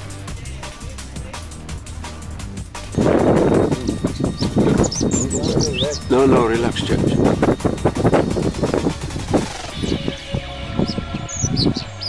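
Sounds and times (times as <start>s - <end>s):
birds chirping: 2.8s - 12.0s.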